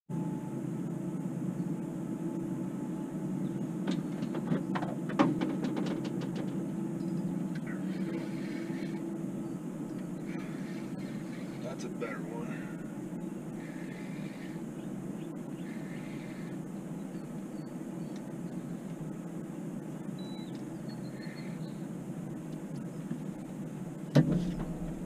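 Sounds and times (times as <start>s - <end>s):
outboard motor droning: 0.2s - 25.0s.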